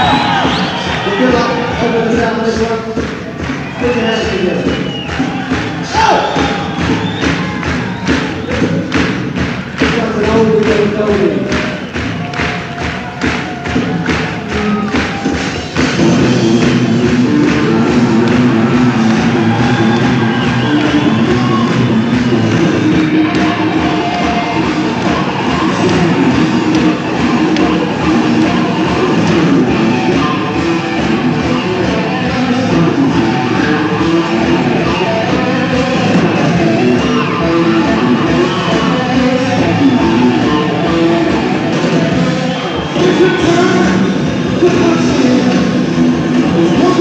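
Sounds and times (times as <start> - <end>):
live rock band playing: 0.0 - 47.0
drum hits: 4.6 - 31.6.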